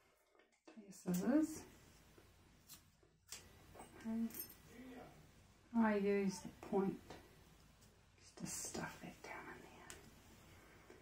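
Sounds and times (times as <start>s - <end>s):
soft breathy sound: 8.4s - 11.0s.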